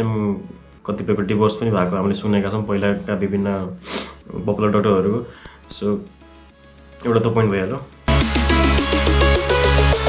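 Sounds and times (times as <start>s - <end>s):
man speaking: 7.0s - 7.9s.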